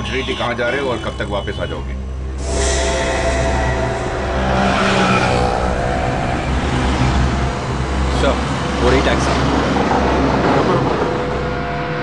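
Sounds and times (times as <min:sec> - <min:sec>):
road noise rushing: 0:02.0 - 0:12.0
steady low hum: 0:02.0 - 0:12.0
car engine accelerating: 0:02.3 - 0:12.0.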